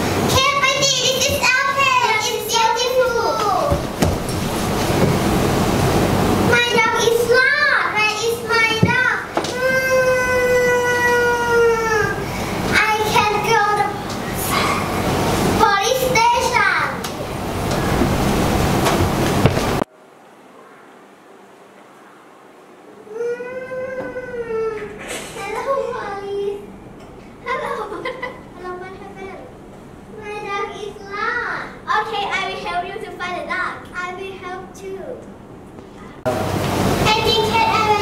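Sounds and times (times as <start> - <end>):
loud steady noise: 0.0 - 10.4, 11.3 - 20.4, 36.2 - 38.0
child's voice: 0.3 - 3.8, 6.5 - 15.0, 15.6 - 17.0, 23.1 - 26.7, 27.4 - 35.3, 37.1 - 38.0
steady rushing noise: 12.2 - 19.9.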